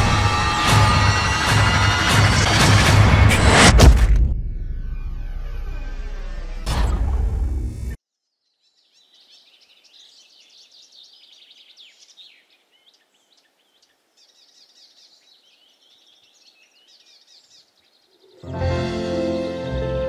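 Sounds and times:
birds chirping: 8.1 - 19.3.

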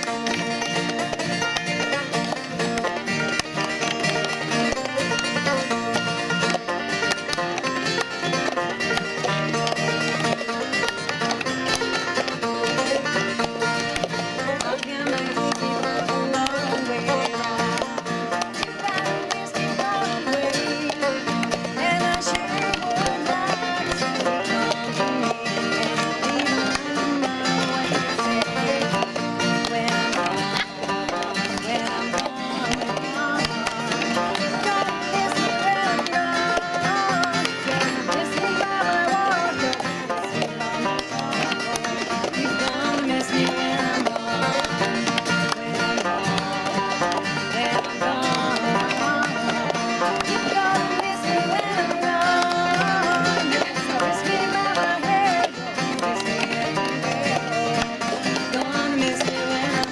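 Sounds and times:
acoustic guitar: 0.0 - 59.9
banjo: 0.0 - 59.9
plastic cups tapped on table: 0.0 - 59.9.

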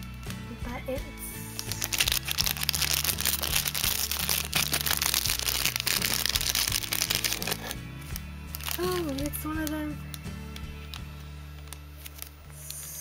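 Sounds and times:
background music: 0.0 - 13.0
plastic packaging crinkling: 1.5 - 13.0.

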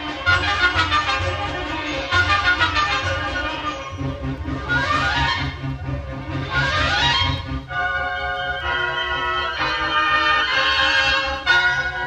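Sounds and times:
wind band playing chords: 0.0 - 12.0.

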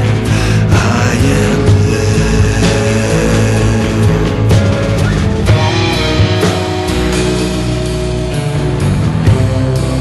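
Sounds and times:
psychedelic rock band playing: 0.0 - 10.0.

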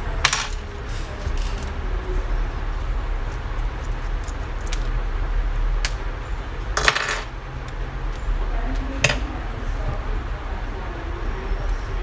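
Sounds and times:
metallic clink: 3.3 - 4.4.

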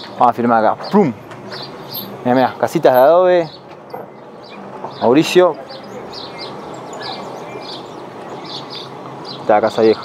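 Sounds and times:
outdoor background hiss: 0.0 - 10.0
small birds chirping: 0.0 - 10.0.

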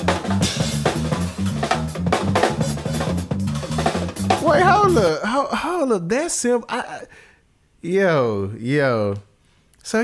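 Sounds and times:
drum kit playing: 0.0 - 5.2
repeating bass line: 4.2 - 5.1
person's voice: 4.4 - 5.6.

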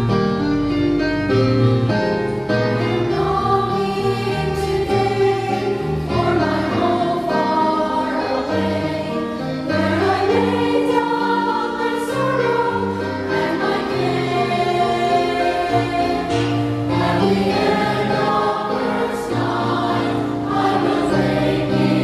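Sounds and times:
choir singing in harmony: 2.7 - 22.0.

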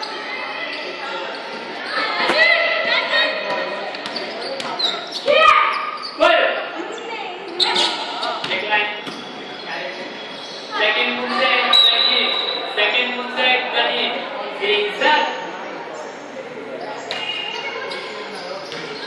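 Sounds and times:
children's voices echoing: 0.0 - 3.9, 5.2 - 8.5, 10.6 - 15.2, 16.5 - 19.0.

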